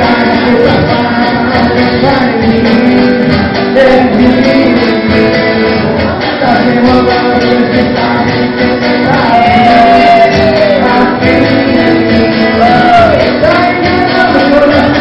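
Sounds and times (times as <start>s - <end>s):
guitar: 0.0s - 15.0s
person singing: 0.0s - 15.0s.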